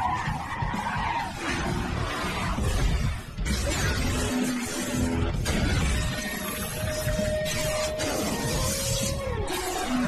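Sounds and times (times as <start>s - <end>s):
cartoon tyres squealing: 0.0s - 2.6s.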